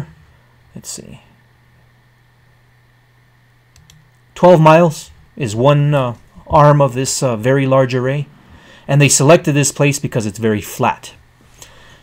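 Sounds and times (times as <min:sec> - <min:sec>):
steady low hum: 0:00.0 - 0:12.0
computer mouse clicks: 0:03.7 - 0:04.2.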